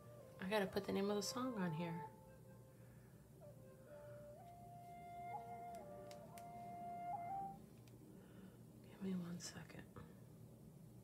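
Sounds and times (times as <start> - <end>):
slow flute-like melody: 0.0 - 8.4.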